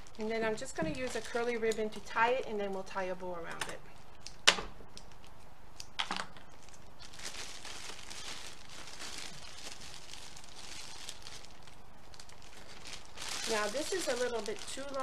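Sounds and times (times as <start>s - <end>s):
cellophane bag crinkling: 0.0s - 2.8s, 6.2s - 15.0s.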